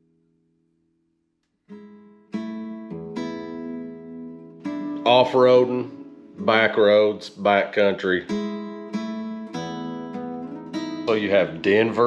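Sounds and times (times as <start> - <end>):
acoustic guitar strumming chords: 1.7 - 12.0.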